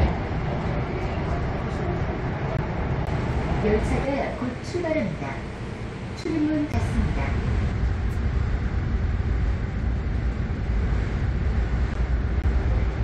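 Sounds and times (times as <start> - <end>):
train rumble inside carriage: 0.0 - 13.0.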